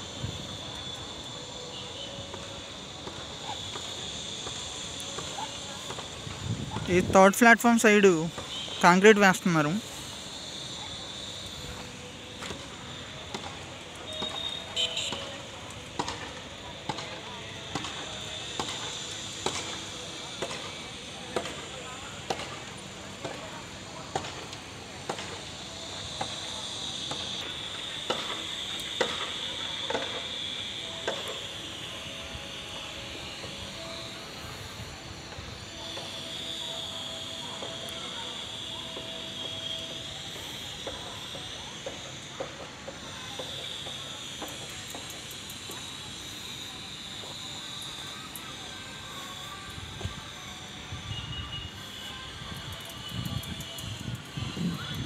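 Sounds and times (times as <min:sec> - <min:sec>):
high-pitched drone: 0:00.0 - 0:16.6, 0:25.5 - 0:55.0.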